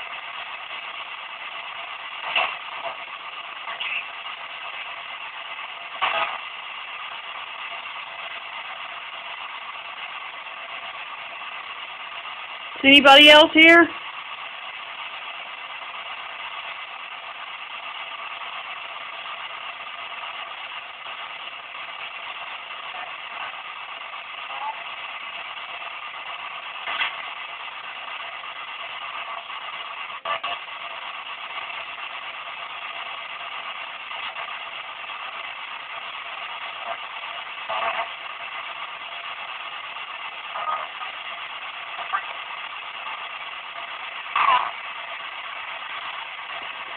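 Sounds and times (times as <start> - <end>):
radio static hiss: 0.0 - 46.9.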